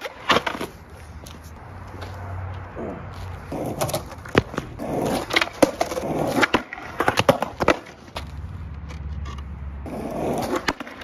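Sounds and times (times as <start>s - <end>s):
skateboard clacks: 0.0s - 0.8s, 3.5s - 11.0s
skateboard wheels rolling on asphalt: 0.0s - 11.0s.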